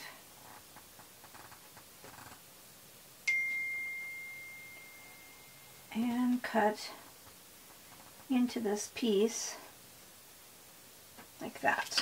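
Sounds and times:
bell-like ding: 0:03.3 - 0:05.8.

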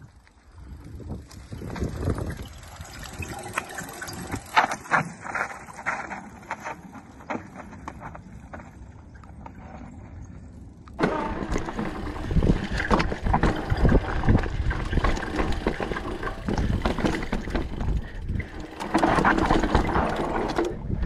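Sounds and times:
mountain bike rattling on trail: 0:00.0 - 0:21.0.

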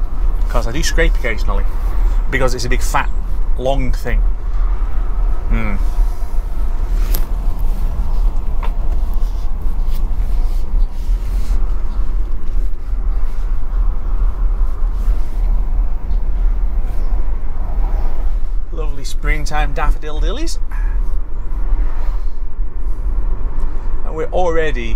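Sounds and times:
road and tyre rumble: 0:00.0 - 0:24.9.

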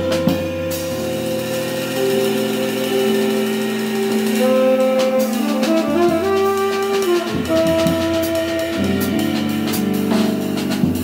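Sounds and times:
long held notes: 0:00.0 - 0:10.8
drum strikes: 0:00.0 - 0:11.0
light drumming: 0:00.0 - 0:11.0.

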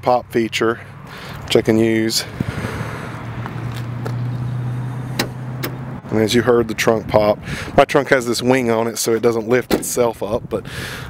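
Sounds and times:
car trunk latch clicks: 0:05.1 - 0:05.9, 0:09.7 - 0:10.0.

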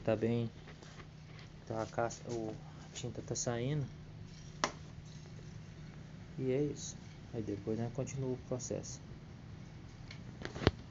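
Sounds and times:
low steady hum: 0:00.0 - 0:10.9.

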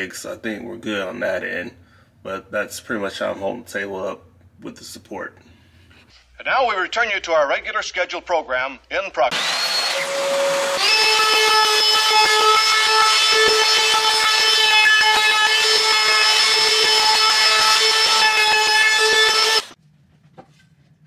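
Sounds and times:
trim router whining: 0:09.3 - 0:19.8.

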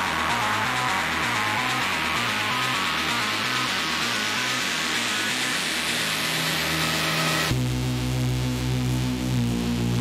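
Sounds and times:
deep bass and synth chord: 0:00.0 - 0:10.0.

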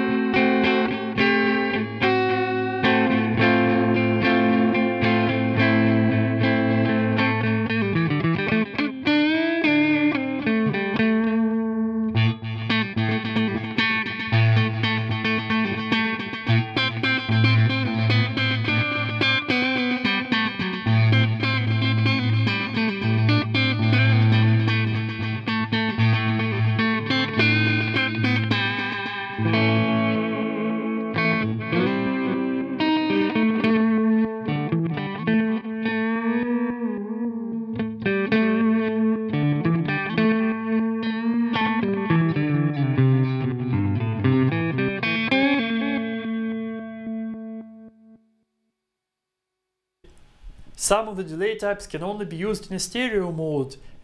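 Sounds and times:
electric guitar with delay effect: 0:00.0 - 0:48.2.

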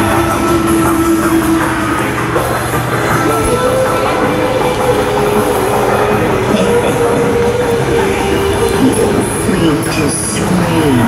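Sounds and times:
droning tones over loudspeakers: 0:00.0 - 0:11.0.

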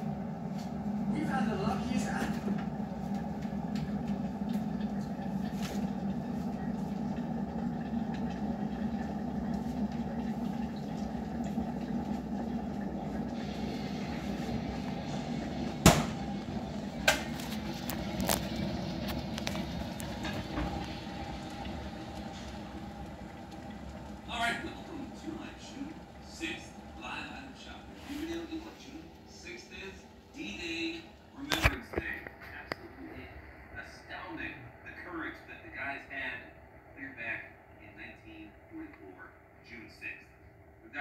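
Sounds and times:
steady low hum: 0:00.0 - 0:41.0
loud knock: 0:15.8 - 0:16.2.

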